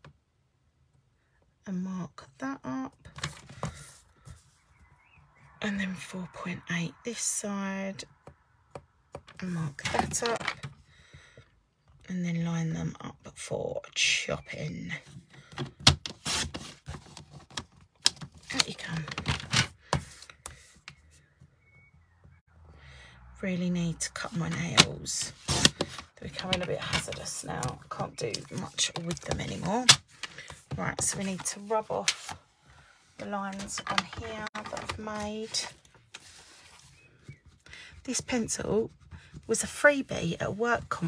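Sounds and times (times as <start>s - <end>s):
paper handling: 24.2s - 32.4s, 33.2s - 37.6s.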